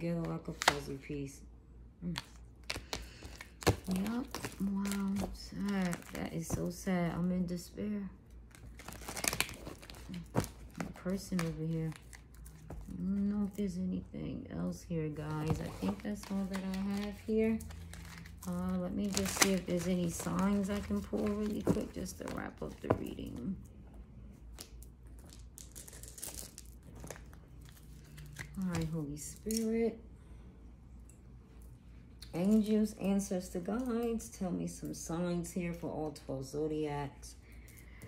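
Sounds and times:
cards being shuffled: 2.0 - 6.9, 15.3 - 23.5.

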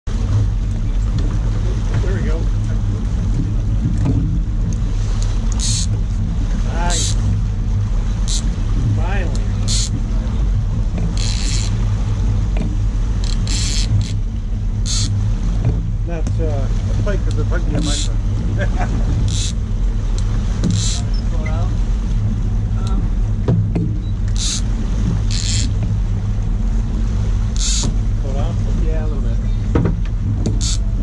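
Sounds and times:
boat engine humming: 0.0 - 31.0.

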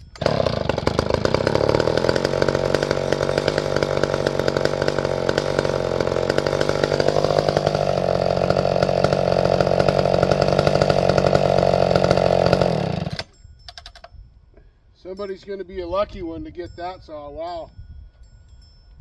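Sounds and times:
chainsaw engine running: 0.0 - 13.3.

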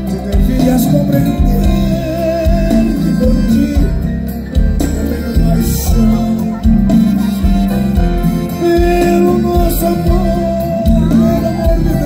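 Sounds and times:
live country band playing: 0.0 - 12.0
regular bass beat: 0.0 - 12.0.

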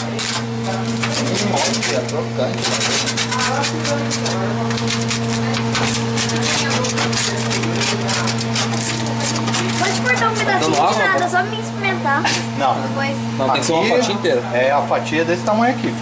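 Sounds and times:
pizza cutter scraping metal pan: 0.0 - 11.3, 12.2 - 12.5.

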